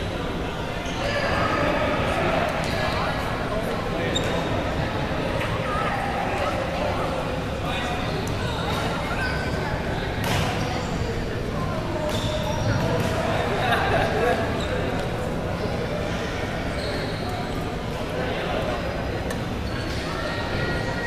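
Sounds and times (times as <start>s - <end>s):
indistinct voices in hall: 0.0s - 21.0s
short squeaks: 16.7s - 17.7s.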